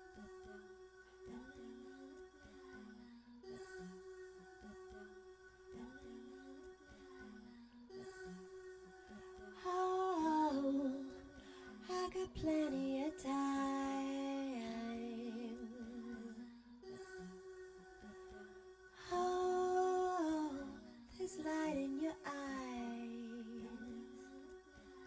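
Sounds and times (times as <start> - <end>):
soft backing drone: 0.0 - 25.0.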